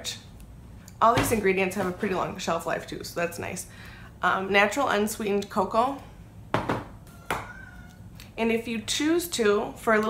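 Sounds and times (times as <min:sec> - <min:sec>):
containers knocking on hard surface: 0:06.6 - 0:07.5.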